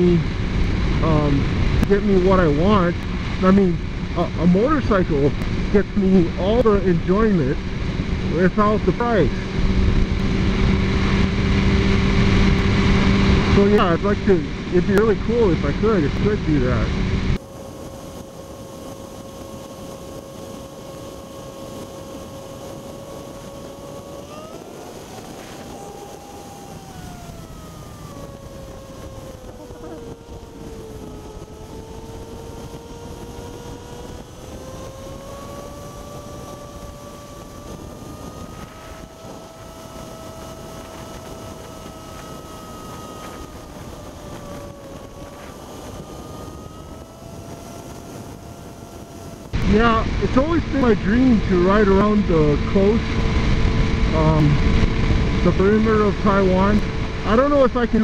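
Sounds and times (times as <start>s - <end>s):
motorcycle engine running: 0.0s - 58.0s
wind rushing over microphone: 0.0s - 58.0s.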